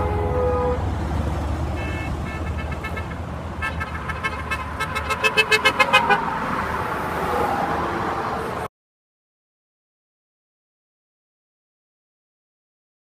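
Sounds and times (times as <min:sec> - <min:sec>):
passing traffic rumble: 0:00.0 - 0:08.7
vehicle horn short beeps: 0:01.8 - 0:06.2.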